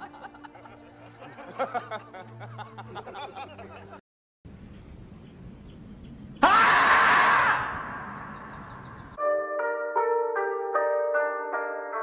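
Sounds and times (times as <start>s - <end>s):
loud long scream: 6.4s - 8.3s
bright keyboard melody: 9.1s - 12.0s.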